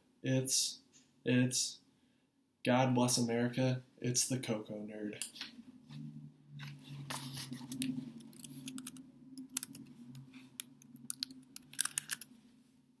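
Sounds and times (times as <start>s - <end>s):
faint low hum: 2.8s - 13.0s.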